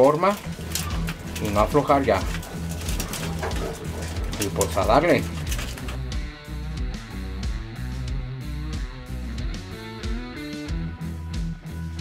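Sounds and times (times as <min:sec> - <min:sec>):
beaks pecking grain: 0:00.3 - 0:06.0
pigeons cooing: 0:00.4 - 0:06.1.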